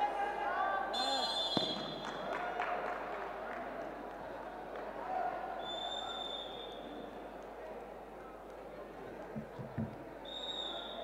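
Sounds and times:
referee's whistle blast: 0:01.0 - 0:02.2.

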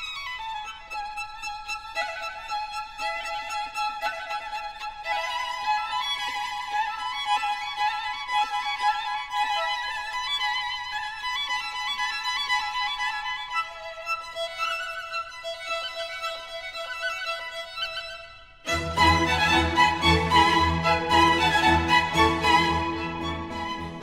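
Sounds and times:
solo violin melody: 0:00.0 - 0:24.0.

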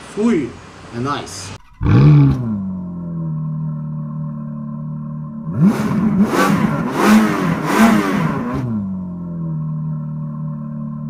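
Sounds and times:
low droning music note: 0:01.6 - 0:05.6
car engine revving: 0:01.6 - 0:11.0.

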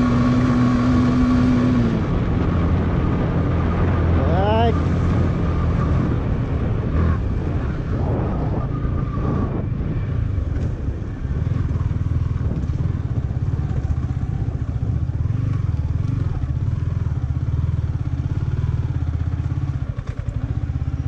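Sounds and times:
motorcycle engine at low revs: 0:00.0 - 0:21.0.

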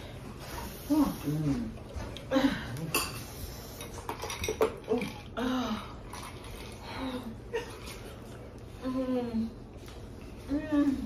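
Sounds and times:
low room hum: 0:00.0 - 0:11.0
woman humming: 0:08.8 - 0:09.6.

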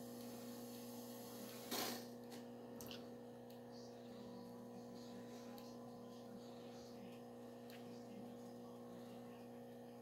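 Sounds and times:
burst of tape hiss: 0:00.0 - 0:02.1
faint electrical hum: 0:00.0 - 0:10.0.

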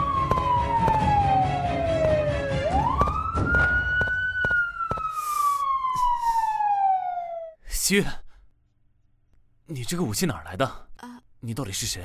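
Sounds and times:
background music with a beat: 0:00.0 - 0:03.1
police siren wailing: 0:00.0 - 0:07.6.

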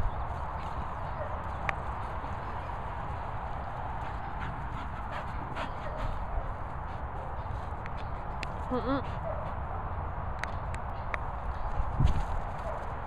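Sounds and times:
dog panting: 0:04.0 - 0:07.7, 0:08.9 - 0:09.6
wind rumble on microphone: 0:09.5 - 0:13.0.

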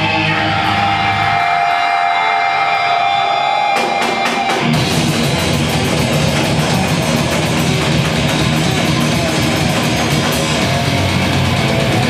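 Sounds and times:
heavy metal band playing: 0:00.0 - 0:12.0
drums crashing: 0:03.5 - 0:12.0.

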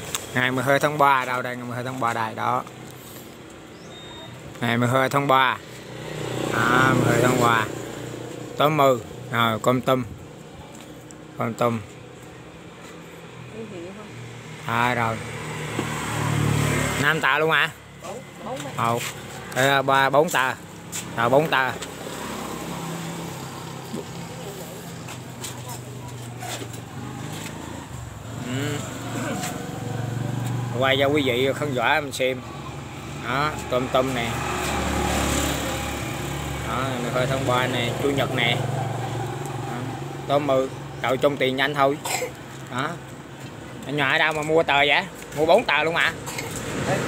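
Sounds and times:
vehicle engine humming: 0:00.0 - 0:47.0.

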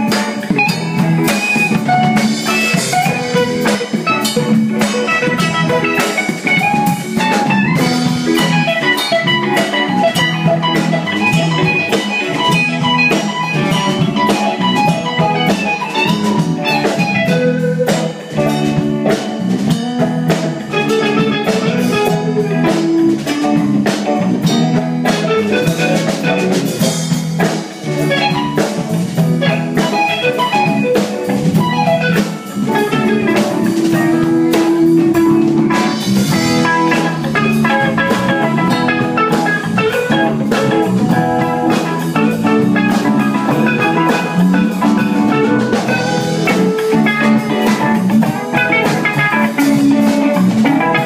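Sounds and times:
live rock band playing: 0:00.0 - 0:51.0.

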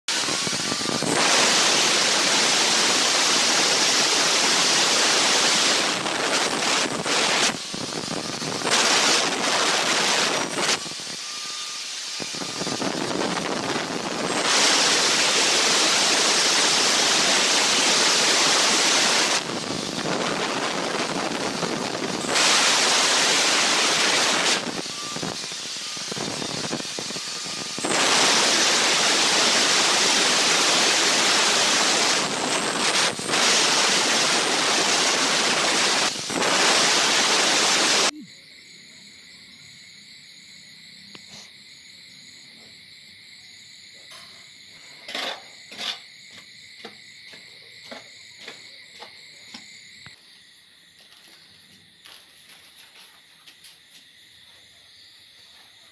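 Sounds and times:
electric cutter grinding stone: 0:00.1 - 0:38.1, 0:45.0 - 0:46.0.

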